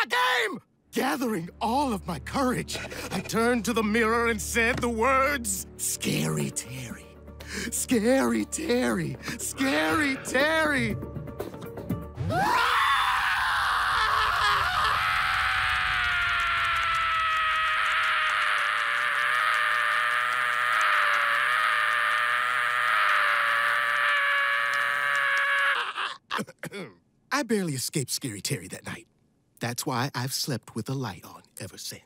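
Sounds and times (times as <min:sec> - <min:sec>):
cartoon character screaming: 0:12.2 - 0:26.2.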